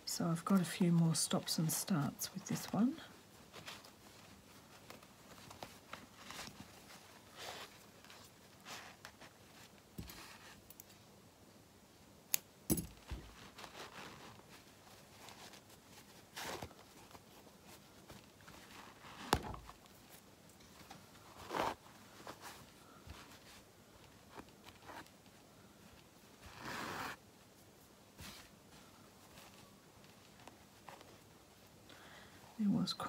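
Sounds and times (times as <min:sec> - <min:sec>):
fabric and thread rustling: 0:00.0 - 0:11.1, 0:12.7 - 0:33.0.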